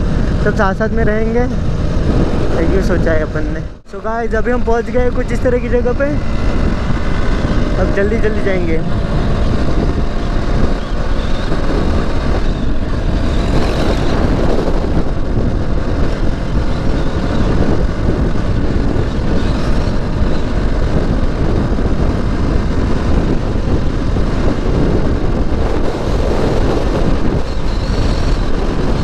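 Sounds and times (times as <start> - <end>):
motorcycle engine running: 0.0 - 29.0
wind buffeting microphone: 0.0 - 29.0.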